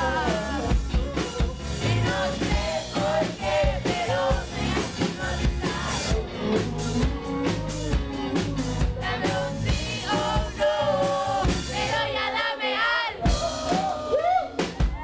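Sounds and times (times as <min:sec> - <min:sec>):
live rock band playing: 0:00.0 - 0:12.3, 0:13.2 - 0:15.0
man singing: 0:00.0 - 0:12.4.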